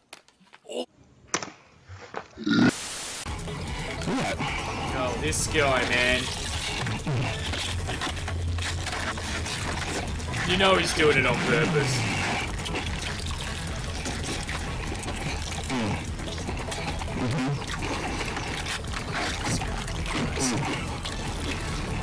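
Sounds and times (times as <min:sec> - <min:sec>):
man chewing and slurping: 0:02.3 - 0:22.0.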